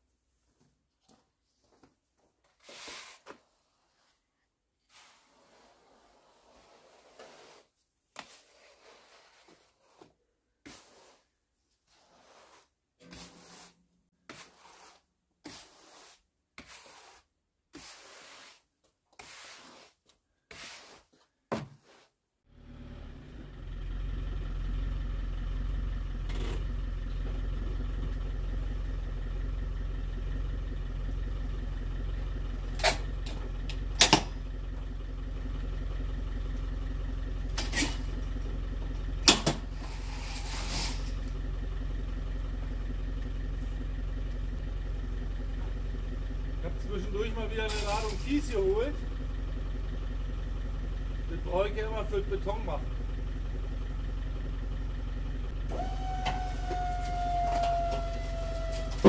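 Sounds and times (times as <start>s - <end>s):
push broom sweeping sand: 2.5s - 22.2s, 39.6s - 41.4s, 46.9s - 49.0s
vehicle engine idling: 22.5s - 59.0s.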